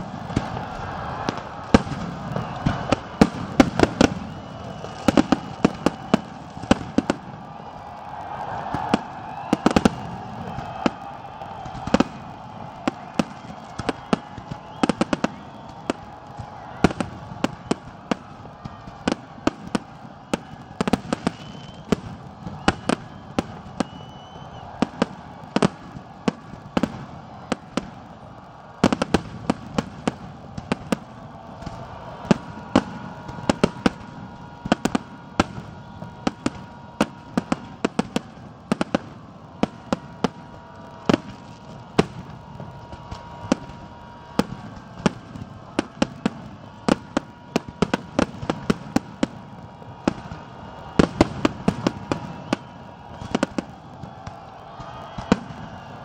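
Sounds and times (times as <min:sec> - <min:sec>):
fireworks bursting: 0:00.0 - 0:56.0.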